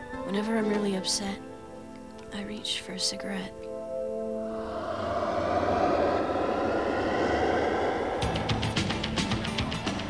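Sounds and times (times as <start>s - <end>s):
rushing whoosh sound effect: 4.4s - 9.8s.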